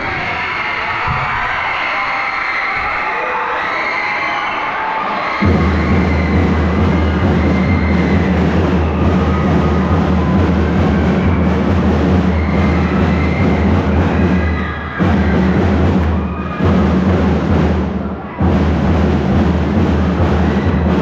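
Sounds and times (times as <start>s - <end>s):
drum and lyre band playing: 5.4s - 21.0s.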